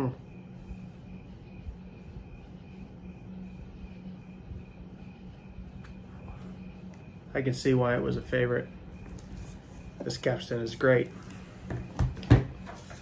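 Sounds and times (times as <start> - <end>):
high insect-like chirp: 0.0 - 13.0
steady low hum: 0.0 - 13.0.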